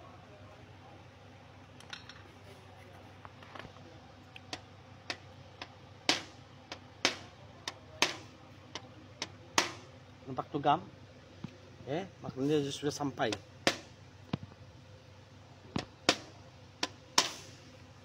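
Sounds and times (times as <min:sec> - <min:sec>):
hammer tapping metal: 0:04.5 - 0:08.3, 0:09.2 - 0:09.8.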